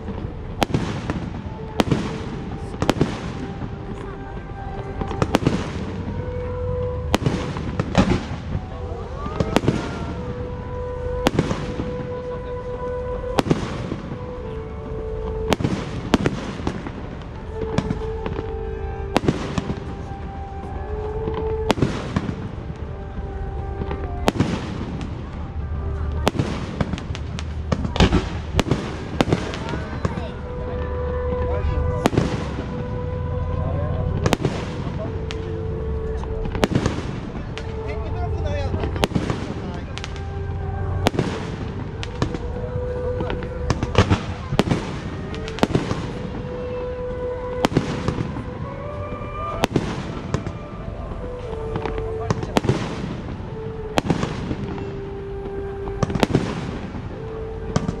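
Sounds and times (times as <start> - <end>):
fireworks bursting: 0.0 - 58.0
music with long held notes: 0.0 - 58.0.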